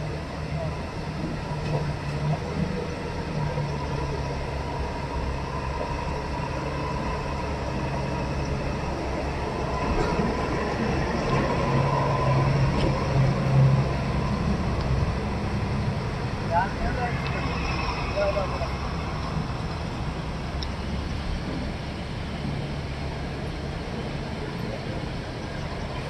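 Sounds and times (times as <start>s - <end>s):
diesel truck engines: 0.0s - 26.0s
excavator engine rumbling: 0.0s - 26.0s.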